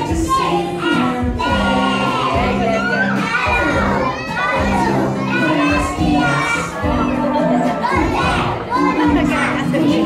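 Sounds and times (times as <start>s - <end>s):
children's song backing music: 0.0s - 10.0s
young children singing: 0.0s - 10.0s.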